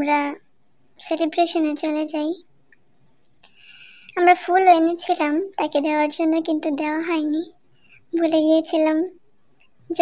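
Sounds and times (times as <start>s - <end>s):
person speaking: 1.0s - 2.5s, 3.2s - 9.2s.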